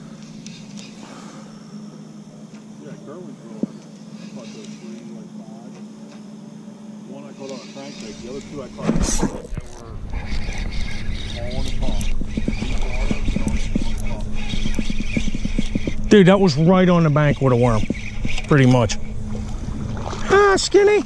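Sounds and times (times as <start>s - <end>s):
steady low hum: 0.0s - 21.0s
spinning reel being cranked: 7.4s - 18.9s
wind rumble on microphone: 8.7s - 20.4s.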